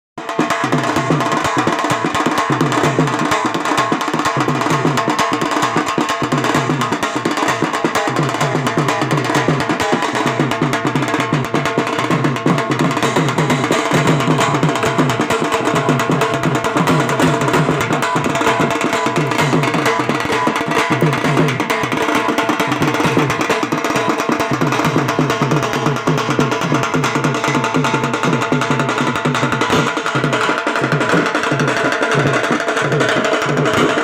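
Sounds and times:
large drums beaten with sticks: 0.2s - 34.0s.

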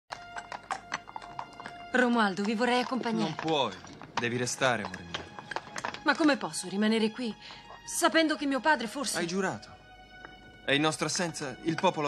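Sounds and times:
horse hooves clopping: 0.1s - 12.0s.

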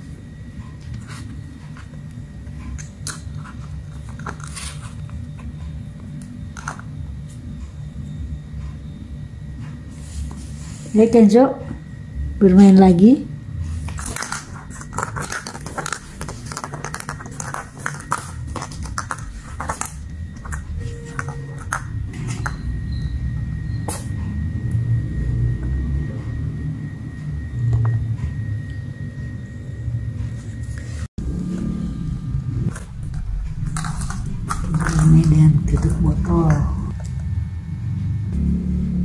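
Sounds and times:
plastic cap knocking and scraping: 14.0s - 20.6s
low rumble: 31.2s - 39.0s.

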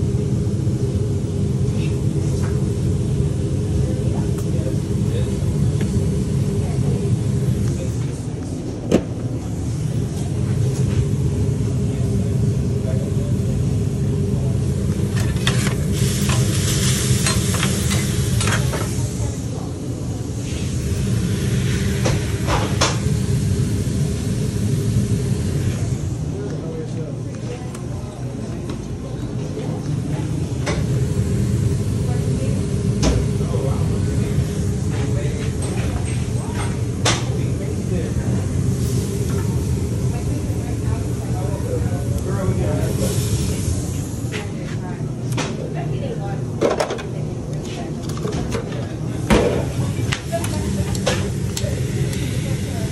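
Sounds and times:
steady low hum: 0.0s - 52.9s.

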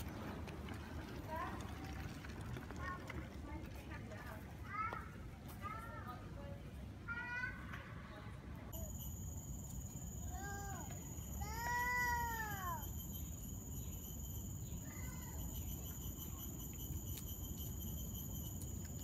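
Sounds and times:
child calling out: 10.3s - 12.8s.

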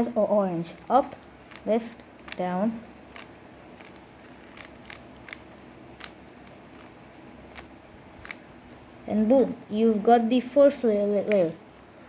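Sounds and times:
puzzle cube clicks: 0.8s - 8.4s.

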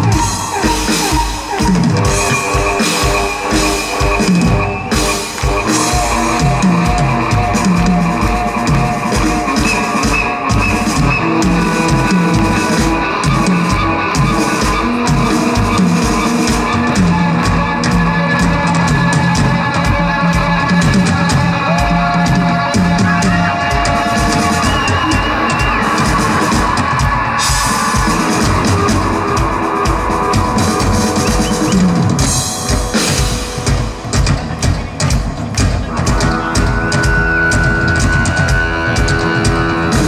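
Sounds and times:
drum kit beat: 0.0s - 40.0s
rock band playing: 0.0s - 40.0s.

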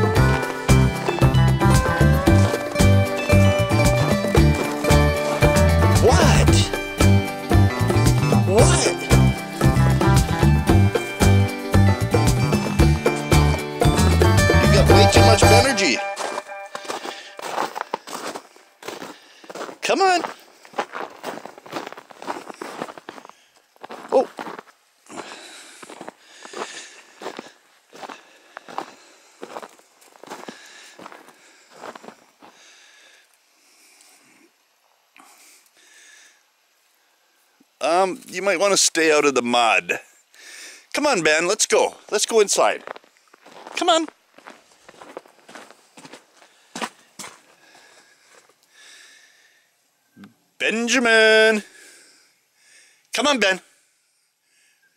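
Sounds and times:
footsteps in snow: 0.0s - 7.4s, 15.7s - 32.6s, 42.1s - 48.6s.

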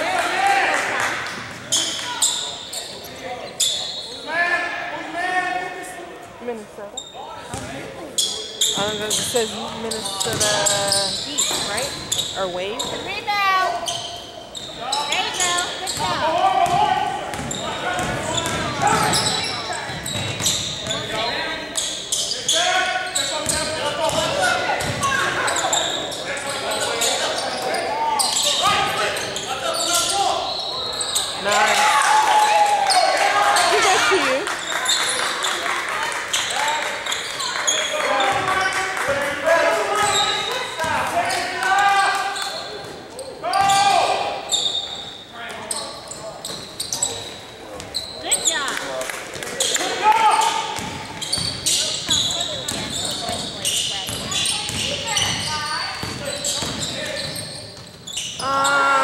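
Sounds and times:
basketball bouncing on hardwood: 16.0s - 19.2s.

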